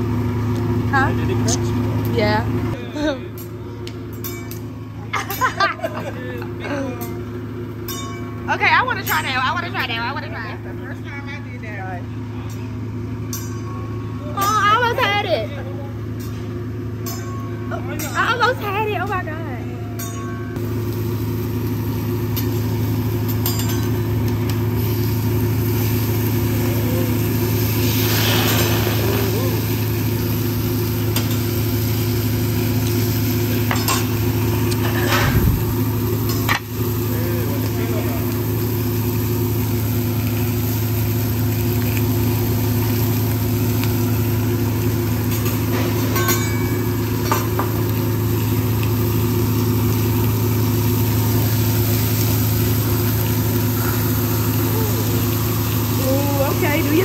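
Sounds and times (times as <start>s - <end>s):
steady low hum: 0.0s - 57.0s
food sizzling on a griddle: 20.6s - 57.0s.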